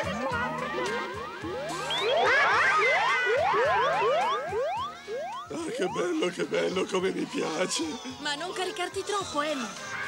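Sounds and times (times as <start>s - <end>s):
music: 0.0s - 10.0s
cartoon rising whoops: 1.7s - 5.4s.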